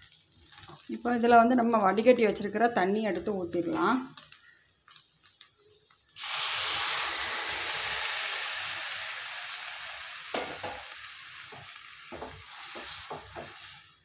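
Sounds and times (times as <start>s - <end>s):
water sizzling in hot pan: 0.0s - 14.0s
wooden spatula scraping pan: 11.6s - 13.9s.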